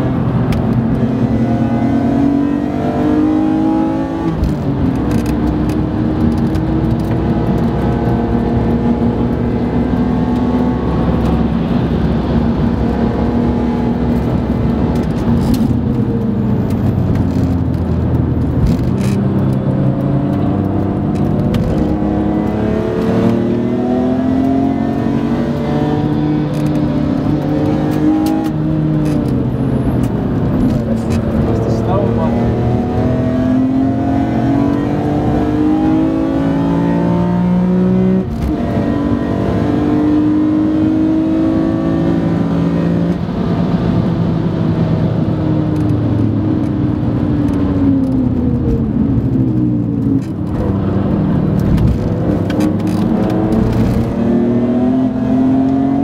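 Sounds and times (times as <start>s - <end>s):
car engine revving in cabin: 0.0s - 56.0s.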